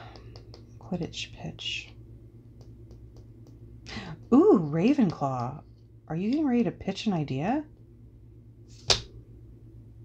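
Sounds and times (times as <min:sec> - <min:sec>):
fingertip tapping card on board: 0:00.0 - 0:00.8, 0:02.5 - 0:04.4
faint low hum: 0:00.0 - 0:10.0.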